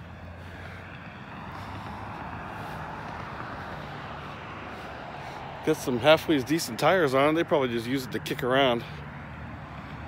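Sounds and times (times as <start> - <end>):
low engine hum: 0.0 - 10.0
road noise rushing: 0.0 - 10.0.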